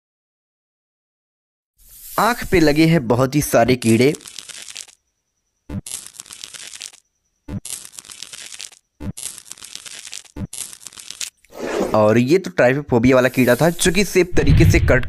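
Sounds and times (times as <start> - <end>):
crackly tearing knife cuts: 5.8 - 7.0, 7.6 - 11.4.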